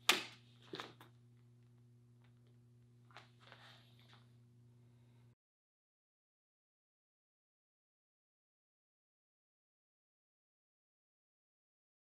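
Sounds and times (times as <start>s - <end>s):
steady low hum: 0.0s - 5.4s.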